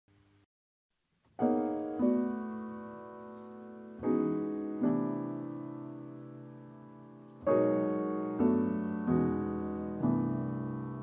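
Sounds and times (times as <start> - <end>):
grand piano slow chords: 1.3 - 11.0.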